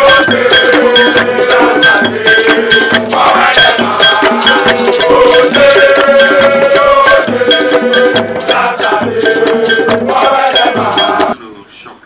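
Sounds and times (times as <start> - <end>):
crowd of voices singing: 0.0 - 11.4
hand drum: 0.0 - 11.4
ringing bell-like struck beat: 0.0 - 11.4.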